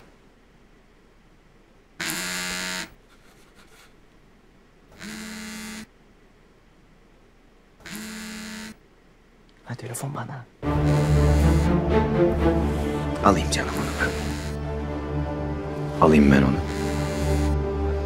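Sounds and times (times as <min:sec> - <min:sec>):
phone vibrating on tabletop: 0:02.0 - 0:03.0, 0:05.0 - 0:05.9, 0:07.8 - 0:08.8, 0:13.9 - 0:14.6, 0:16.6 - 0:17.6.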